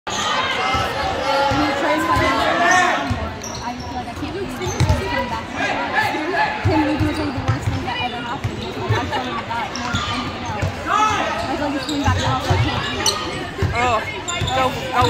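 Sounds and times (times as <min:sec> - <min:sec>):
crowd and players chattering: 0:00.1 - 0:15.0.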